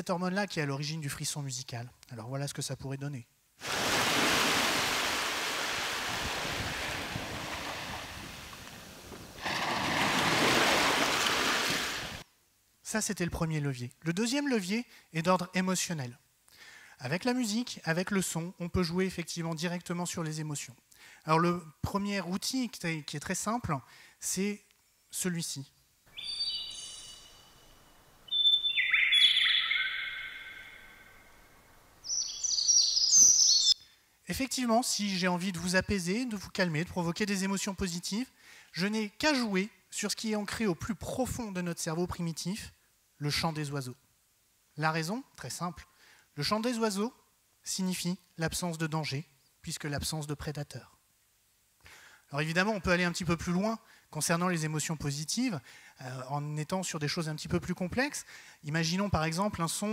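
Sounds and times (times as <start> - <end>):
ocean surf: 3.6 - 12.2
birds chirping: 26.1 - 31.4, 32.0 - 33.8.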